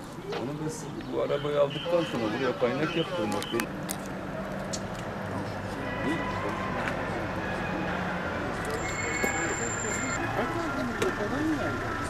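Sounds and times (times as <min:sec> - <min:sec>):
street traffic hum: 0:00.0 - 0:12.0
men talking: 0:00.3 - 0:03.7.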